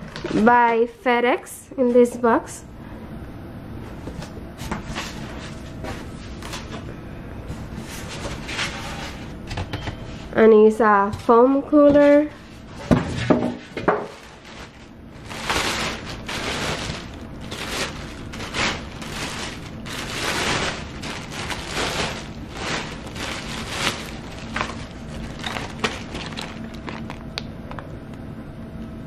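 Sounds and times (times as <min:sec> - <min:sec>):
plastic bags rustling: 0:13.7 - 0:27.8.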